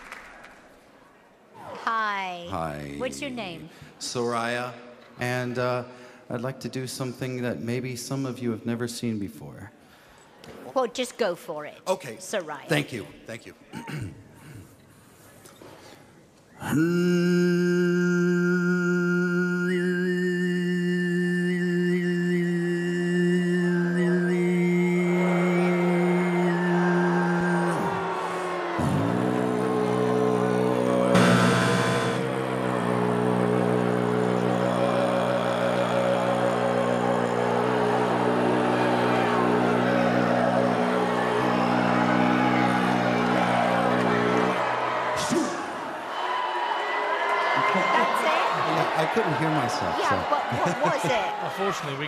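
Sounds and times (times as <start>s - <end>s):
man throat singing drone: 16.6s - 44.6s
audience noise: 24.4s - 52.0s.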